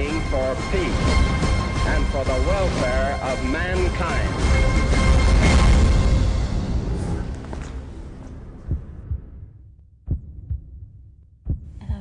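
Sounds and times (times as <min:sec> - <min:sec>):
heartbeat thumps: 0:08.5 - 0:12.0.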